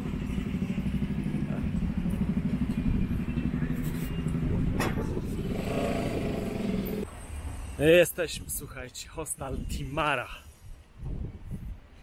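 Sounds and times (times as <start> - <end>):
vehicle engine running: 0.0 - 7.0.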